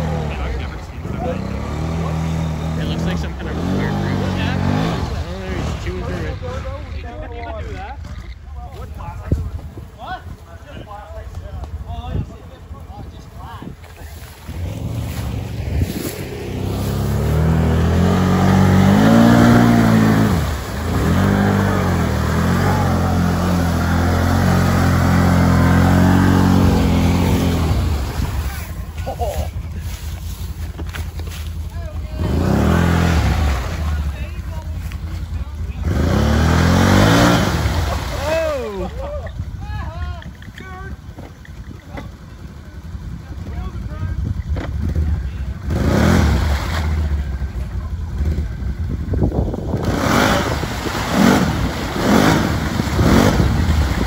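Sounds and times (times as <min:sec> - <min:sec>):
atv engine revving: 0:00.0 - 0:07.3, 0:14.1 - 0:54.0.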